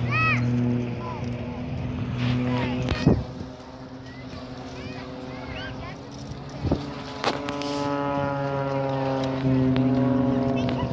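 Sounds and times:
boat horn long note: 7.3s - 10.6s.

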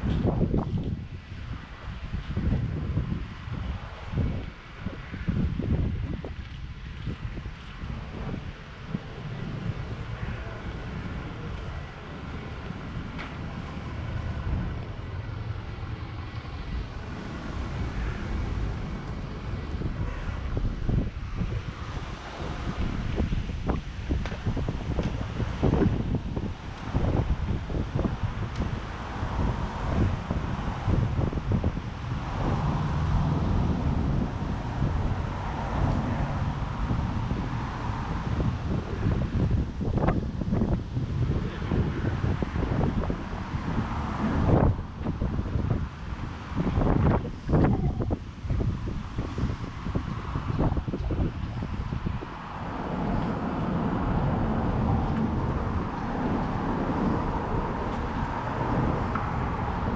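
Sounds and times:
road traffic passing: 0.0s - 59.9s
wind buffeting microphone: 0.0s - 59.9s.

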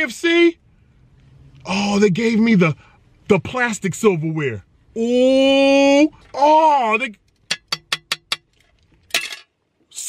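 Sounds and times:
metal tray tapped: 7.5s - 8.5s.

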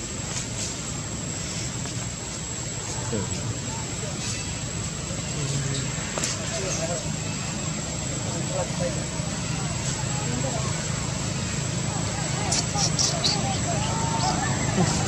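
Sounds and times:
distant voices talking: 2.4s - 15.0s.

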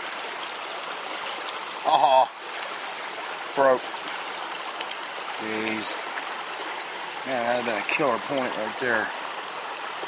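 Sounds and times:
creek water over stones: 0.0s - 10.0s.

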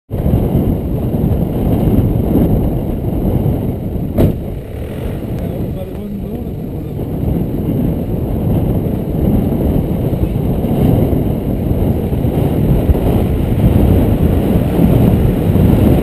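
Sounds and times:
muffled engine rumble: 0.1s - 16.0s.

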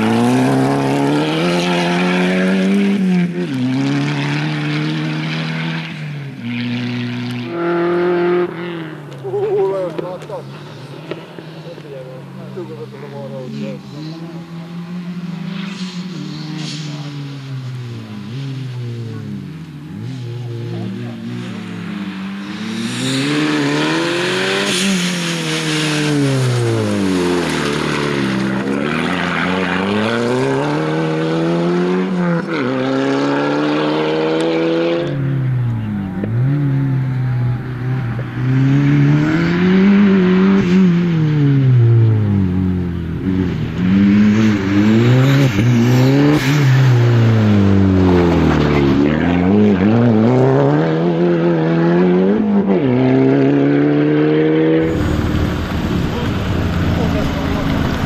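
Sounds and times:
rally car engine revving: 0.0s - 58.0s.

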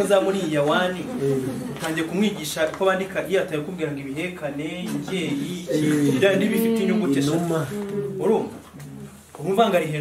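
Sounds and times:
man making wordless vocal sounds: 4.8s - 9.2s.

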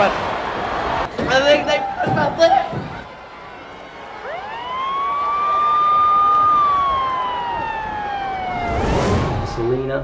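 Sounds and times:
ambulance siren wailing: 4.2s - 10.0s.

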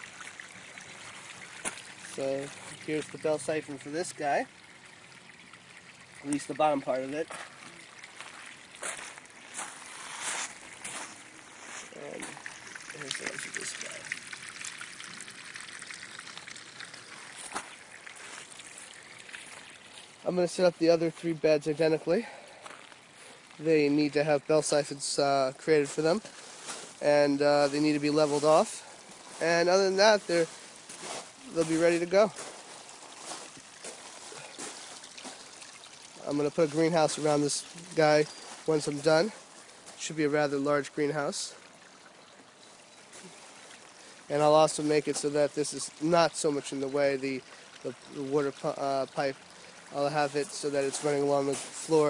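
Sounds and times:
water splashing into drain pipe: 0.0s - 21.6s, 22.2s - 52.0s.

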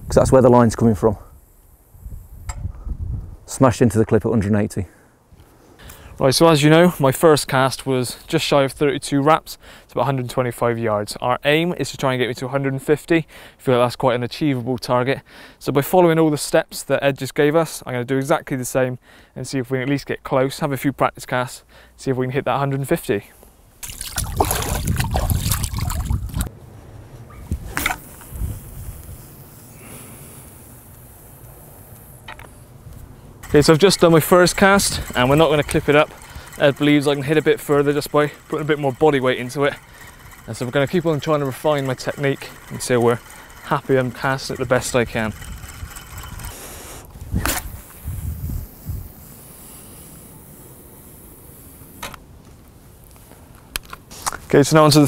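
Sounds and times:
fishing rod swishing: 23.8s - 26.5s
sharp reel clicks: 33.4s - 48.1s
line running off reel: 33.4s - 52.2s
fishing line hissing off reel: 45.6s - 52.1s.

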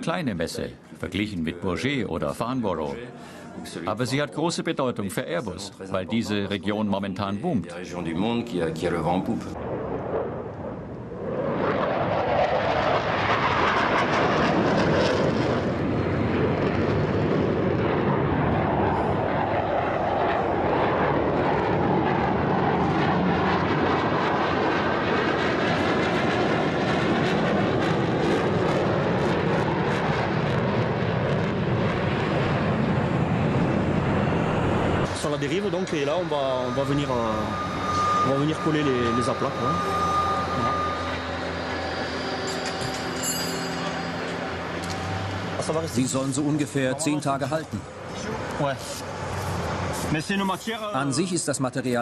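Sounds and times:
military jets flying overhead: 7.8s - 52.0s.

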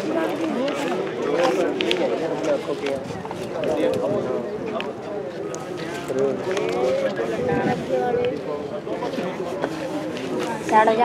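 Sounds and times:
people talking indistinctly: 0.0s - 11.0s.

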